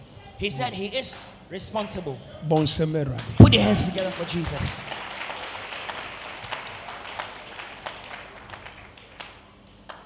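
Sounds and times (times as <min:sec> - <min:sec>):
congregation applauding: 0:03.2 - 0:10.0.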